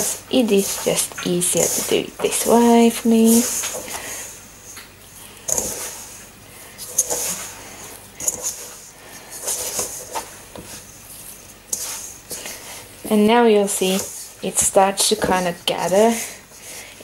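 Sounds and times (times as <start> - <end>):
fingers brushing metal bowl: 0.0 - 3.7
hands squishing dough: 0.0 - 17.0.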